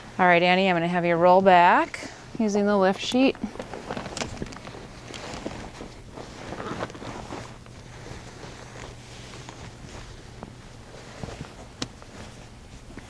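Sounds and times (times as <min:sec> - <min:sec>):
bed linens rustling and sliding: 0:00.2 - 0:13.0.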